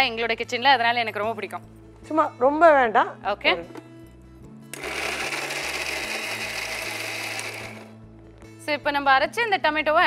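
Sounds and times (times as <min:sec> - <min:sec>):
mixer grinder grinding paste: 0:04.7 - 0:08.0.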